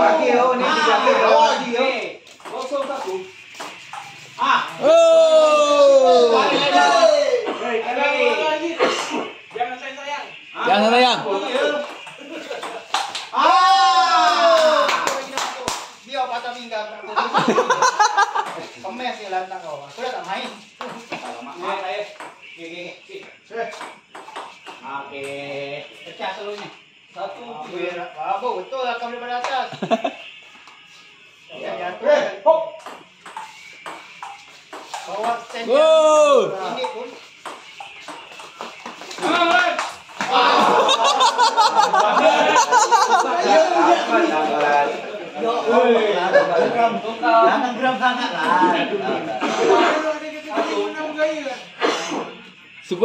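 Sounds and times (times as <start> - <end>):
men talking: 0.0 - 30.4, 31.4 - 53.0
men shouting: 4.4 - 7.6, 13.3 - 15.0, 35.7 - 36.7, 39.2 - 46.1.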